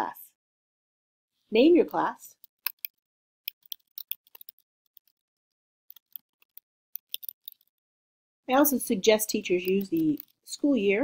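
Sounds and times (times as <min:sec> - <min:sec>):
keyboard keystrokes clicking: 0:02.6 - 0:05.1, 0:05.9 - 0:07.6.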